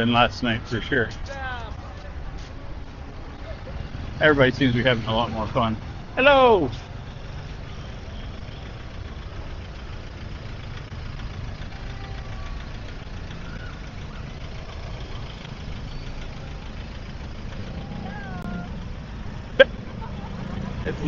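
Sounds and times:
vehicle engines idling in traffic: 0.0s - 21.0s.

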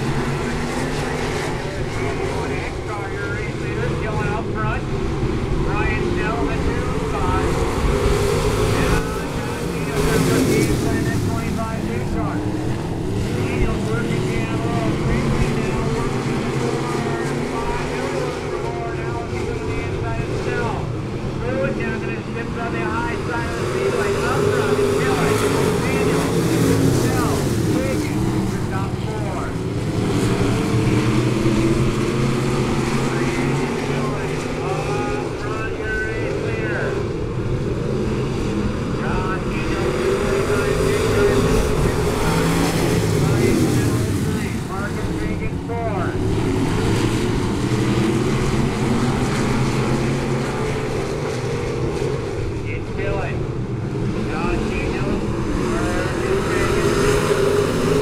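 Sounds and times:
stock car engines racing: 0.0s - 58.0s.

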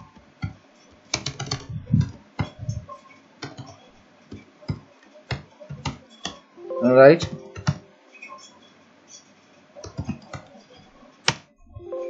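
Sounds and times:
computer keyboard typing: 1.1s - 2.6s, 7.2s - 7.8s.

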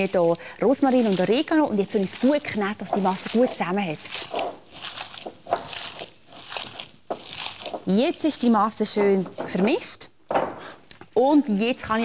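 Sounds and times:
hands kneading wet meat mixture: 0.0s - 9.9s.

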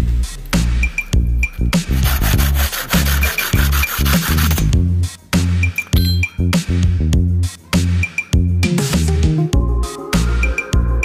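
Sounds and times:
hand saw cutting bamboo: 1.8s - 4.7s.

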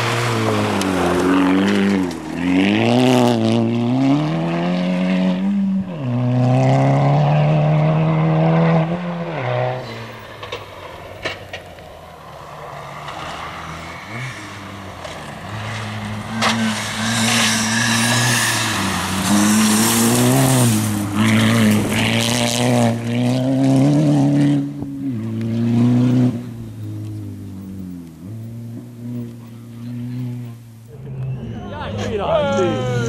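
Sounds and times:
rally car engine at full throttle: 0.0s - 33.0s.

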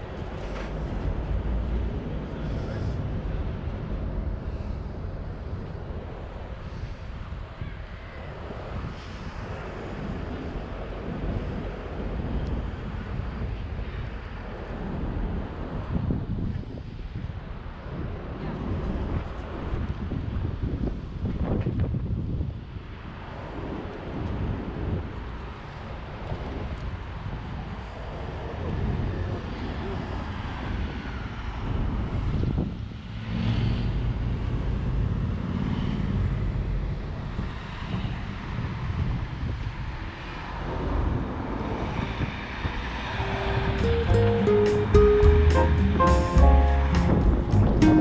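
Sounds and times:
wind buffeting microphone: 0.0s - 43.8s.

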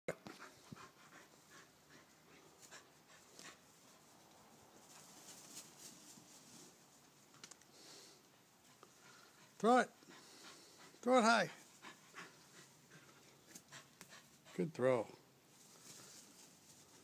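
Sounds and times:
dog panting: 0.3s - 4.0s, 8.6s - 14.8s.

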